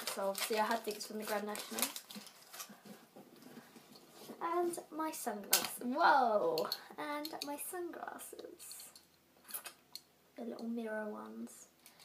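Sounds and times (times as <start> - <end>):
faint rustling: 0.0 - 4.8.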